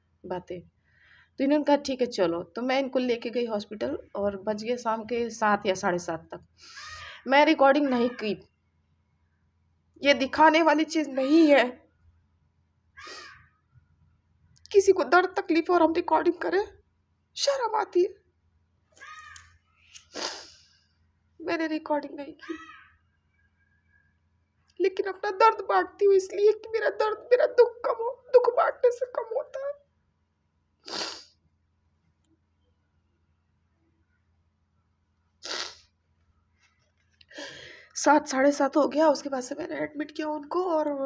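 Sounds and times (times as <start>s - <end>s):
harsh bird call: 19.0s - 20.0s, 22.4s - 23.9s
woman sniffing: 20.0s - 20.8s, 30.8s - 31.4s, 35.4s - 35.9s.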